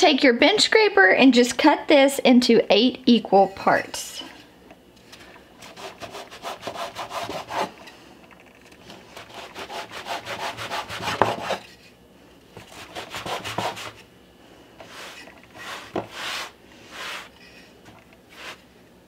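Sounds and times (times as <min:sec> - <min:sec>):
bench scraper rasping on wood: 0:05.6 - 0:07.7, 0:09.2 - 0:11.6, 0:12.6 - 0:14.0, 0:14.8 - 0:17.3.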